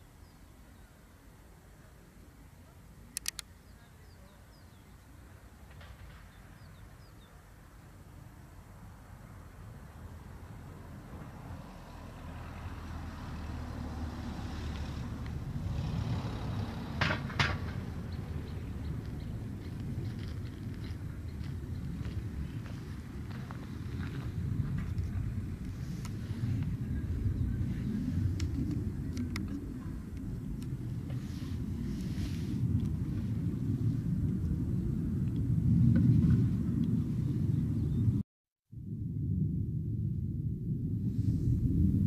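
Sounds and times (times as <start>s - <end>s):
low outdoor rumble: 0.0s - 42.0s
short sharp clicks: 3.2s - 3.5s.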